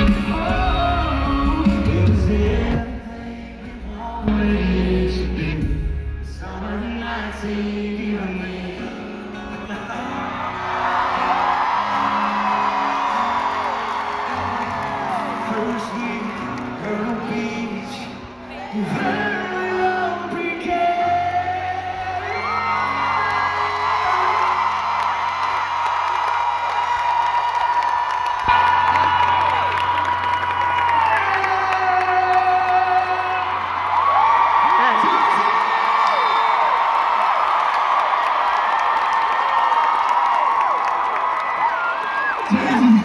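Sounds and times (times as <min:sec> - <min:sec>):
crowd whooping and cheering: 0:08.4 - 0:43.0.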